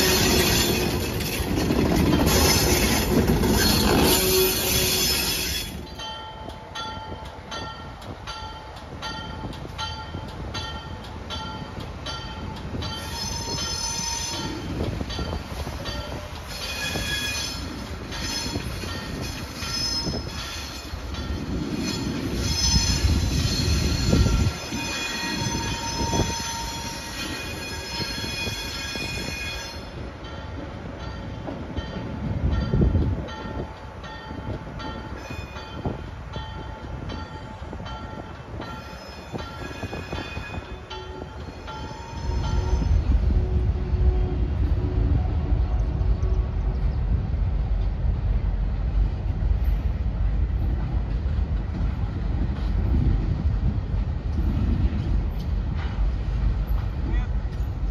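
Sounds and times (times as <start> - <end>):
diesel locomotive engine rumble: 0.0 - 57.9
wheel flanges squealing: 16.5 - 21.0.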